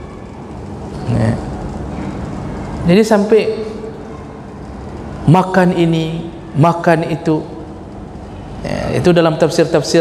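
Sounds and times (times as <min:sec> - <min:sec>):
low voiced hum: 0:00.0 - 0:10.0.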